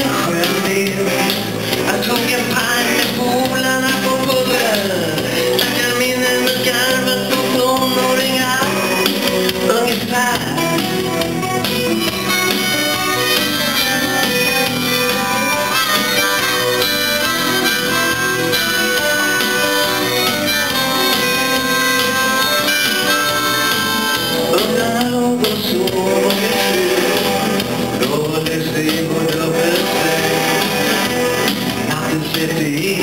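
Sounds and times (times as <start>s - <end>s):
live band playing: 0.0s - 33.0s
harmonica solo: 10.6s - 24.6s.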